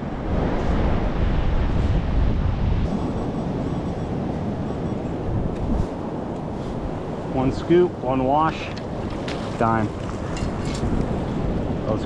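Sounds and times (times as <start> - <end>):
surf washing over sand: 0.0 - 12.0
wind buffeting microphone: 0.0 - 12.0.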